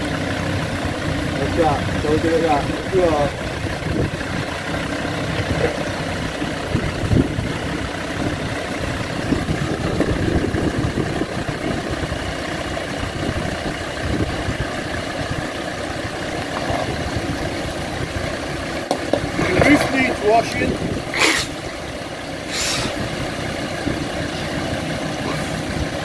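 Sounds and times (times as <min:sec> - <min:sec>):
engine running at low revs: 0:00.0 - 0:26.0.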